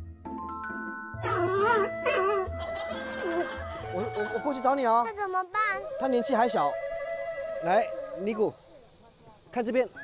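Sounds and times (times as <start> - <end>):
background music: 0.0 - 8.3.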